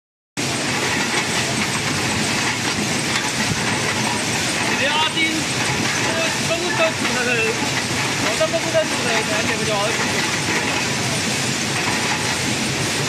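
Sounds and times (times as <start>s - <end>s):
metal cans rattling on conveyor: 0.8s - 12.6s
person's voice: 4.7s - 7.6s, 8.2s - 10.2s.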